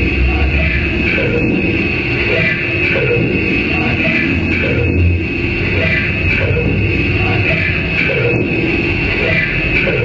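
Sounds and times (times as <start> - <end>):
distorted electronic noise music: 0.0 - 10.0
low hum: 0.0 - 10.0.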